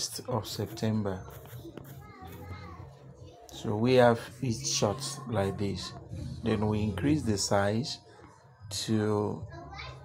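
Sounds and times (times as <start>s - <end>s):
faint high-pitched voices: 0.0s - 10.0s.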